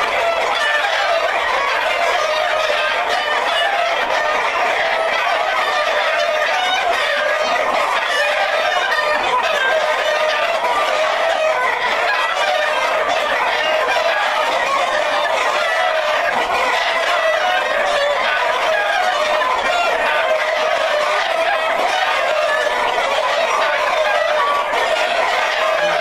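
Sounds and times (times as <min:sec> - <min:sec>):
chickens clucking: 0:00.0 - 0:26.0.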